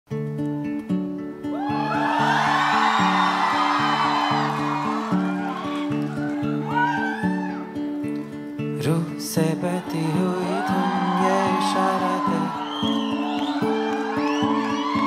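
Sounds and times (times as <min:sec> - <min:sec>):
acoustic guitar chords: 0:00.1 - 0:15.0
audience whooping and cheering: 0:01.5 - 0:08.0, 0:09.7 - 0:15.0.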